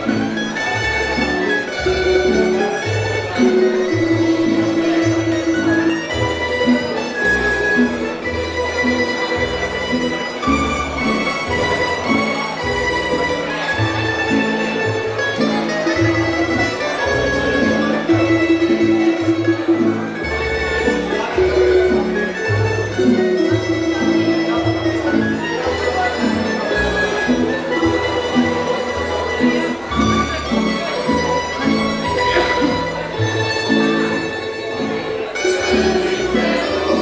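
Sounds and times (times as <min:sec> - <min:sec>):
plucked string melody: 0:00.0 - 0:37.0.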